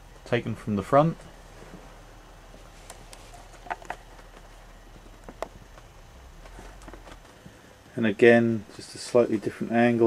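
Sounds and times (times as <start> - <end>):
light clicks and knocks: 2.8 - 7.6.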